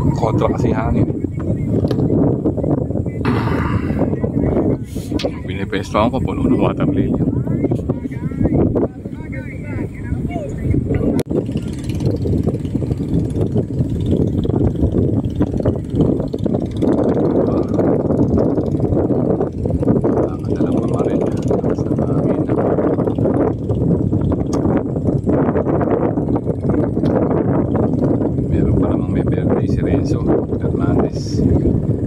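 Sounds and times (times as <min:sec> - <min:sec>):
indistinct voices: 0:00.0 - 0:11.9
low rumbling noise: 0:00.0 - 0:32.0.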